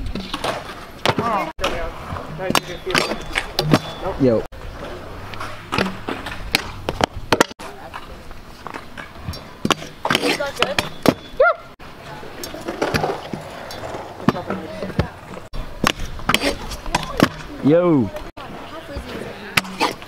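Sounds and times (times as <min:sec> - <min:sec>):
scooter wheels rolling on concrete: 0:00.0 - 0:20.0.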